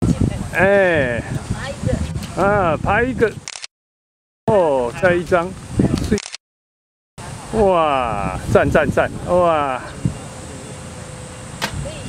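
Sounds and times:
wind rumble on microphone: 0.0 - 3.5, 4.5 - 6.2, 7.2 - 10.6, 11.5 - 12.0.

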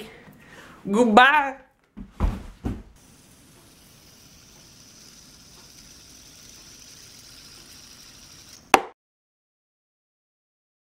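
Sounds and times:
faint recording hiss: 0.0 - 8.7.

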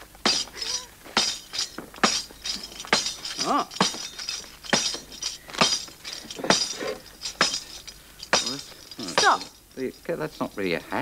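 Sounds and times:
tambourine hits: 0.2 - 9.7.

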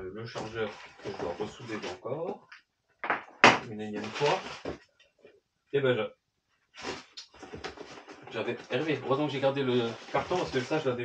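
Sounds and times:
packaging rustling: 4.0 - 4.8, 6.8 - 10.9.

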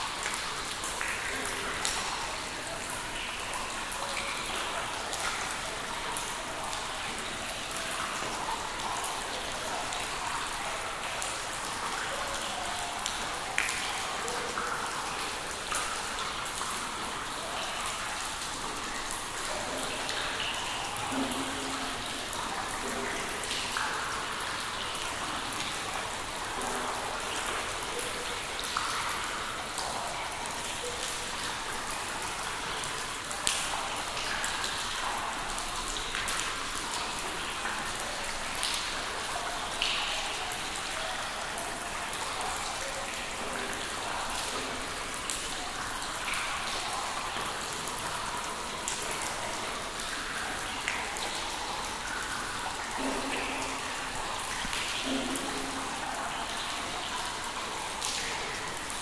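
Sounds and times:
steady wash of water: 0.0 - 59.0
water dripping in a cave: 0.0 - 59.0.

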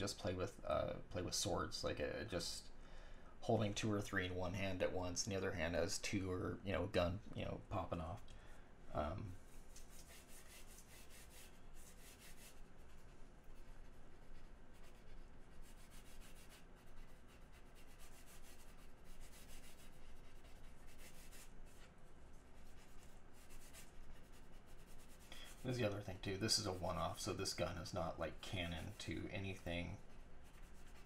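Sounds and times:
pencil scratching on paper: 9.9 - 21.9, 22.6 - 27.3, 28.4 - 31.0.

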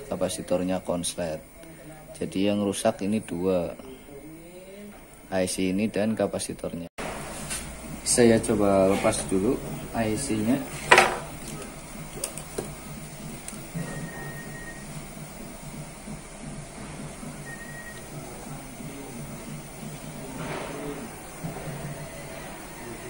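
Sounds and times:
faint music: 7.8 - 23.0.

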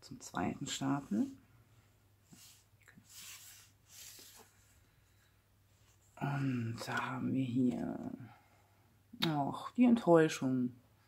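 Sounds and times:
cards rustling and swishing: 2.3 - 4.8.

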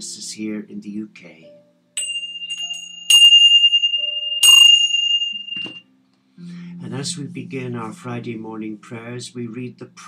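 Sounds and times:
small bells ringing: 2.0 - 5.8.

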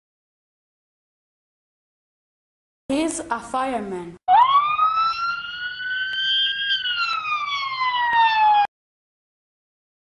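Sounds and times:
siren wail: 4.3 - 8.7.

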